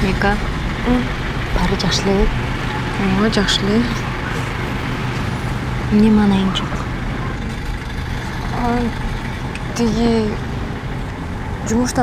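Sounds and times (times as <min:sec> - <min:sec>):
bus engine rumble: 0:00.0 - 0:12.0
road noise: 0:00.0 - 0:12.0.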